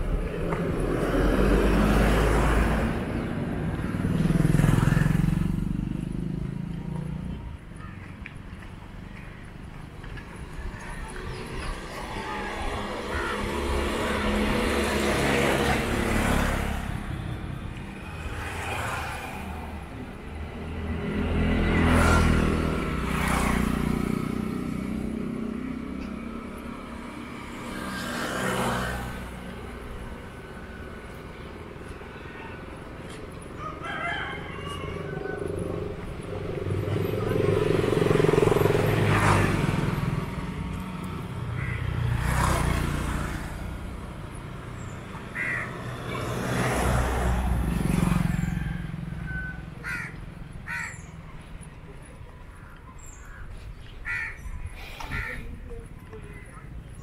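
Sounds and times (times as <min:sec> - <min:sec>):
motorcycles passing by: 0:00.0 - 0:57.0.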